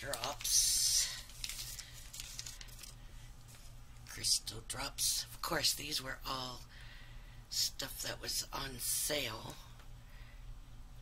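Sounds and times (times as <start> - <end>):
plastic packaging crinkling: 0.0 - 3.7.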